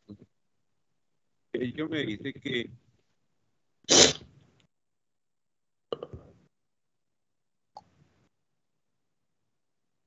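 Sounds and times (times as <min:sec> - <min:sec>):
person sneezing: 0:03.9 - 0:04.3.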